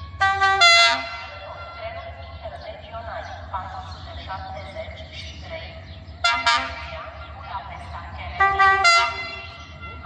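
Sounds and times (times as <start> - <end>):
locomotive horn: 0.0 - 2.0, 6.2 - 7.6, 8.3 - 10.0.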